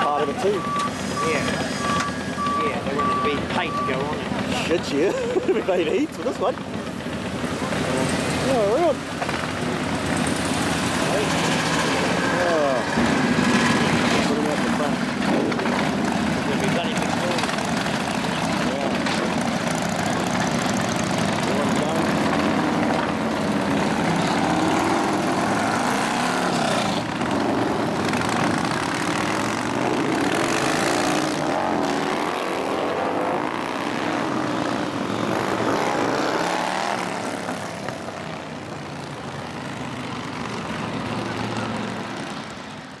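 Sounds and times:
motorcycles revving and riding off: 0.0s - 43.0s.

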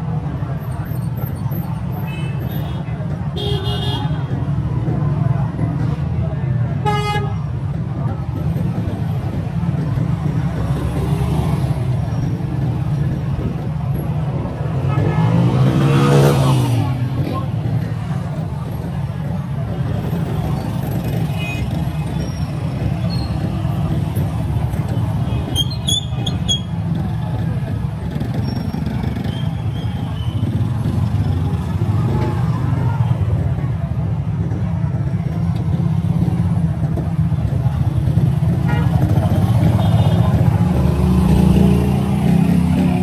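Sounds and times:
street traffic engine rumble: 0.0s - 43.0s.

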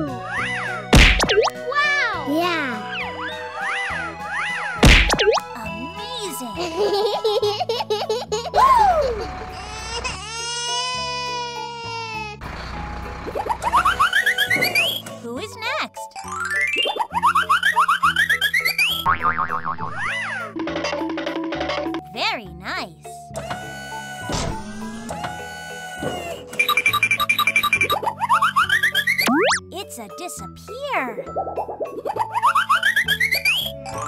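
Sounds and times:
children's background music: 0.0s - 11.6s, 13.3s - 19.1s, 19.7s - 34.0s
wobbling tone: 19.1s - 20.1s, 29.3s - 29.6s
springy boing pitch slides: 29.2s - 29.6s.

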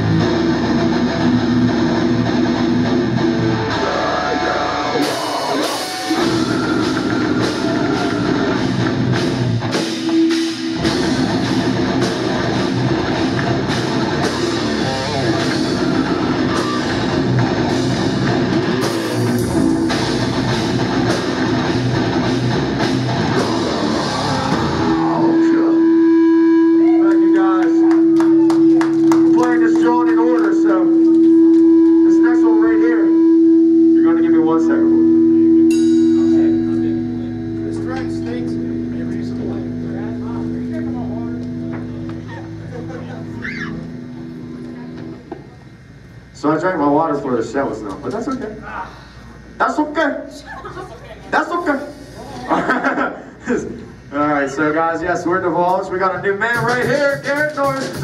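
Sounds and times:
heavy metal band playing live: 0.0s - 27.0s, 34.8s - 45.2s, 56.5s - 58.0s
voices shouting: 3.7s - 8.9s, 14.2s - 17.4s, 23.3s - 25.4s, 43.2s - 44.0s
held guitar note ringing: 30.8s - 45.3s.

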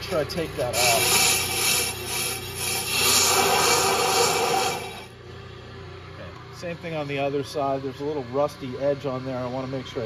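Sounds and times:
lathe tool cutting brake rotor: 0.0s - 5.1s.

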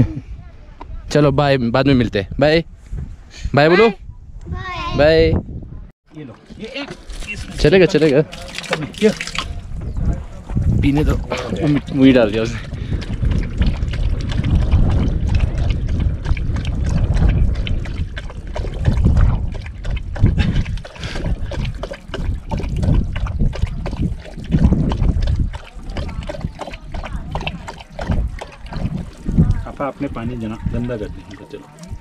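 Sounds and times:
dog lapping water: 6.6s - 32.0s.

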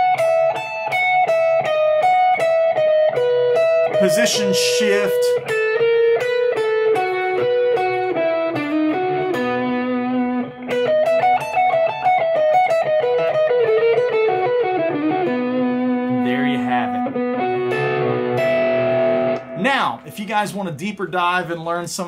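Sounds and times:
electric guitar picked notes: 0.0s - 20.1s.

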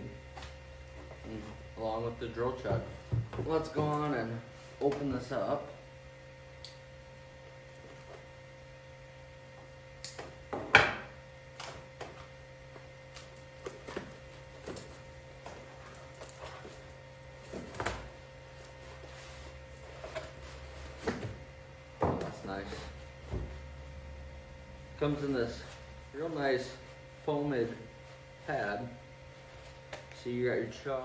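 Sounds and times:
faint steady hum: 0.0s - 31.0s.

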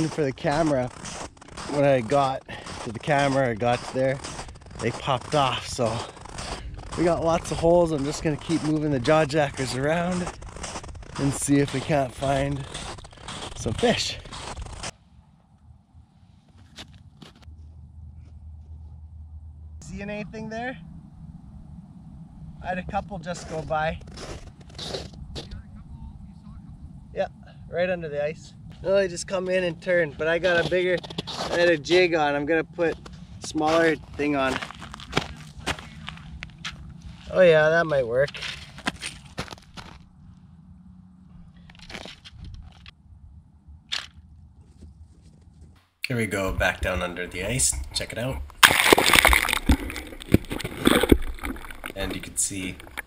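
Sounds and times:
wind rumbling on microphone: 0.0s - 45.8s
water sloshing: 46.8s - 53.0s.

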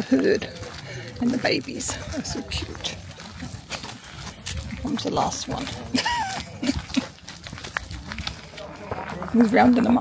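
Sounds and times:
hooves on gravel: 0.0s - 10.0s.

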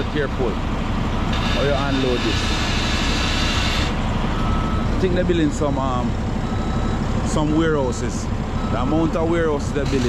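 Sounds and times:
telehandler engine working: 0.0s - 10.0s
truck diesel engine idling: 0.0s - 10.0s.

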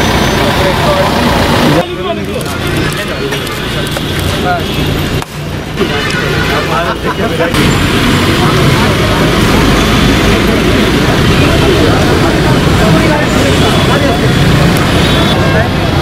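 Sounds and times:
ambulance engines running: 0.0s - 16.0s
crowd talking: 0.0s - 16.0s.

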